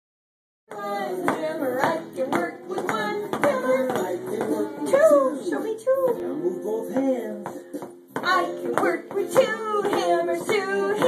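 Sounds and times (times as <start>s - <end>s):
person singing children's song: 0.7s - 7.6s, 8.2s - 11.0s.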